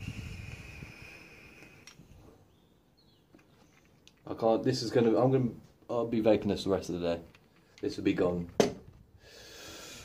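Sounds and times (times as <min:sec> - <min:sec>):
faint high whistle of air: 0:00.0 - 0:02.0.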